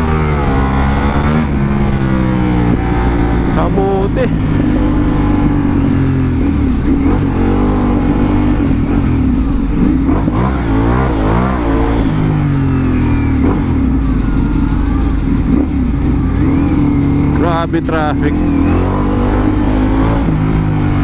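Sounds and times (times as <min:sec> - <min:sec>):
motorcycle engine revving: 0:00.0 - 0:21.0.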